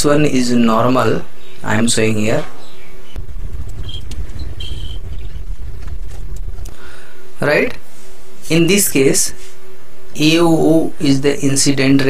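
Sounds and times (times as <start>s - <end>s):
low rumble: 2.9s - 8.5s.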